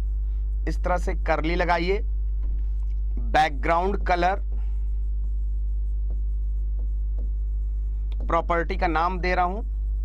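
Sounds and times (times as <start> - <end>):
low electrical hum: 0.0 - 10.0
chalk strokes on chalkboard: 4.0 - 8.4.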